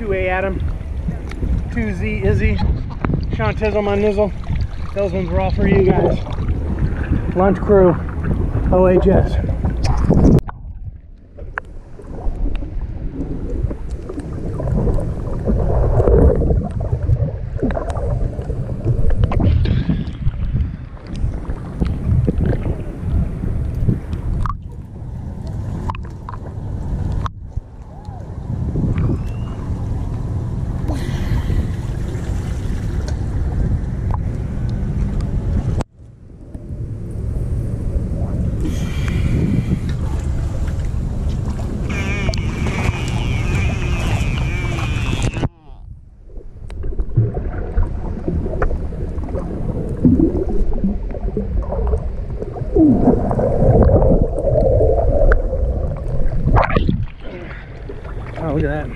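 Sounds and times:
muffled water sloshing: 0.0 - 58.9.

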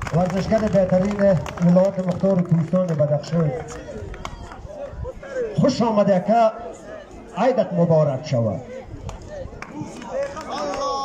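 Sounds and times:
man speaking in a raised voice: 0.0 - 3.8, 5.3 - 6.7, 7.3 - 8.9
background noise: 0.0 - 11.0.

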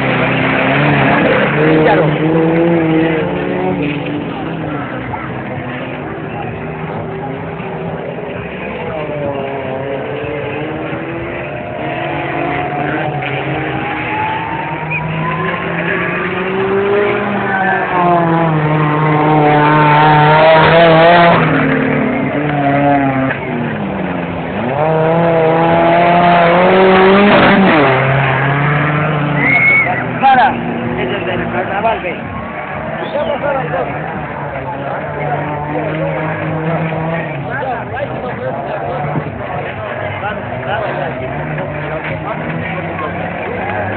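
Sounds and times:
engine revving hard through mud: 0.0 - 43.9.

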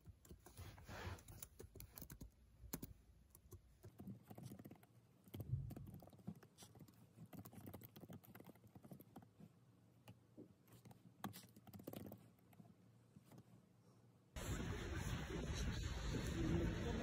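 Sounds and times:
laptop keyboard typing: 0.0 - 9.3, 10.8 - 12.7.

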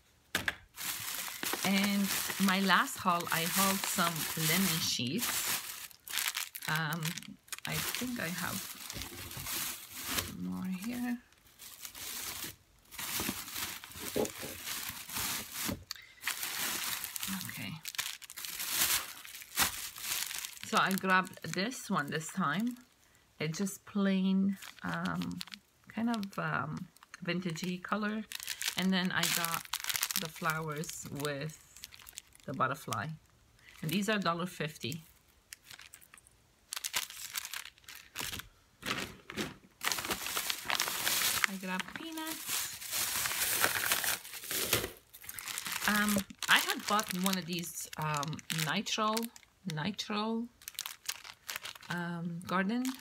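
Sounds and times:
plastic packaging crinkling: 0.3 - 23.0, 24.5 - 34.2, 34.8 - 53.0.

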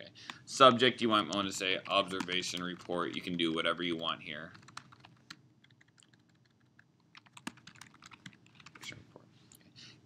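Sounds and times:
faint typing on a keyboard: 0.2 - 0.5, 1.1 - 10.0.

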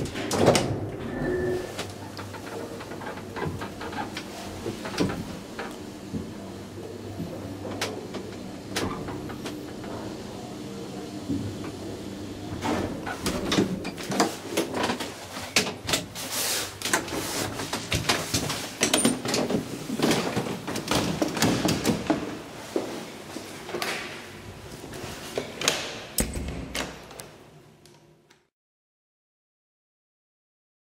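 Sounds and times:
elevator doors clacking and knocking: 0.0 - 16.2.

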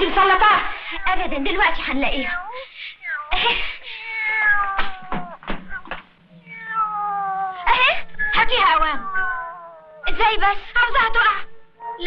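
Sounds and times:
cat meowing: 2.1 - 10.4
short knocks: 4.8 - 6.1.

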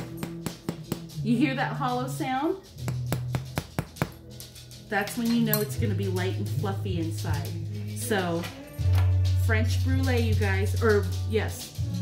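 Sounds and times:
spoon tapping bread crust: 0.0 - 1.2, 2.8 - 4.4.

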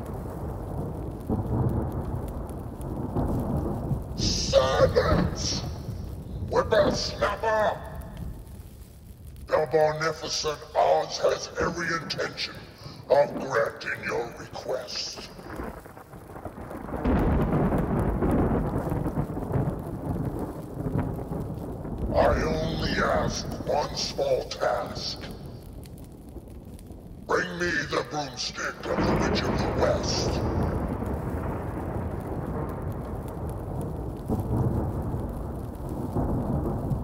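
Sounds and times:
low thunder-like rumbling roar: 0.0 - 8.7, 9.4 - 37.0.

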